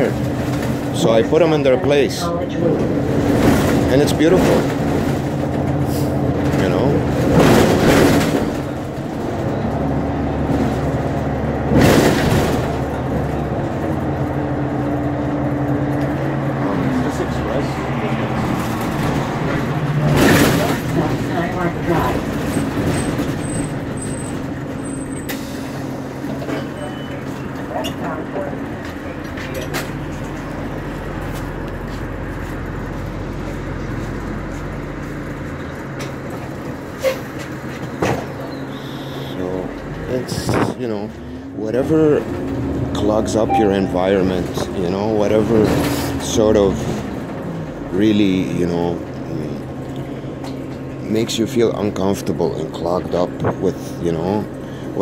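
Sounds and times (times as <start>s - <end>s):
bus engine running: 0.0s - 55.0s.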